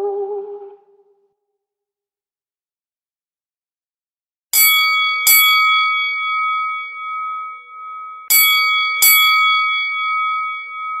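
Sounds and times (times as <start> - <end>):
bell chime strikes: 4.6 - 11.0.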